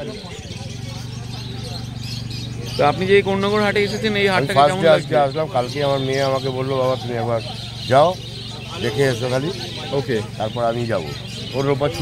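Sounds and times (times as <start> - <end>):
man talking: 2.8 - 8.2.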